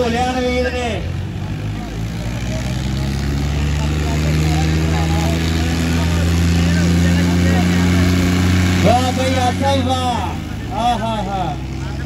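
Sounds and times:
tractor engines running hard: 0.0 - 12.0.

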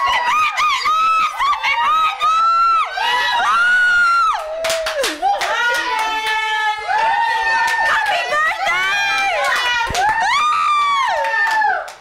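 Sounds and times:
people screaming and cheering: 0.0 - 12.0.

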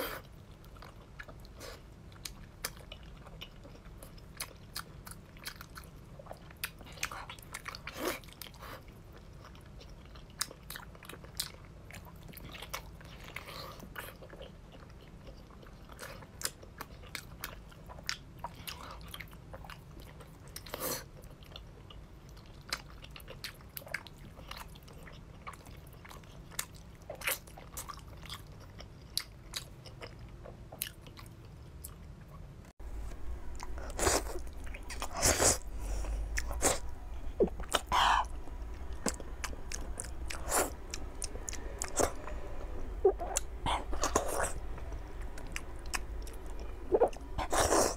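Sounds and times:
faint steady hum: 0.0 - 47.9
mouth chewing and smacking: 0.2 - 32.4.

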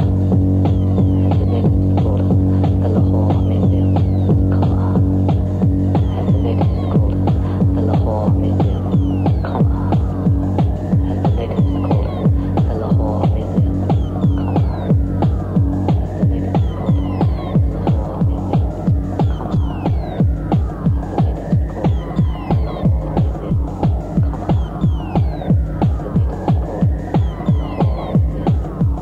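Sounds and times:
fast kick drum: 0.0 - 29.0
low droning bass: 0.0 - 29.0
falling synth sweeps: 13.4 - 29.0.

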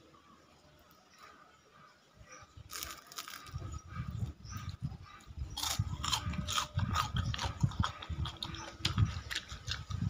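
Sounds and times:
crunching crispy snack: 2.7 - 3.7, 5.6 - 10.0.

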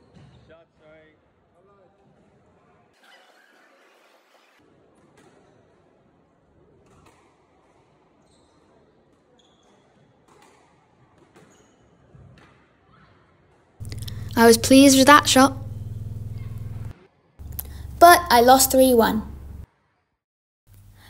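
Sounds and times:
low hall noise: 13.8 - 19.7.

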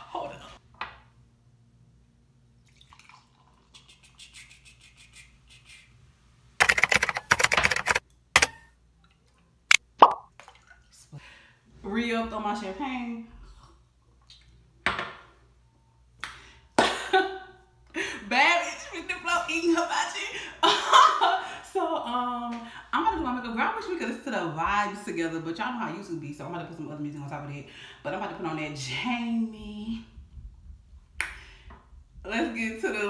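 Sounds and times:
finger snaps: 31.2 - 31.4.

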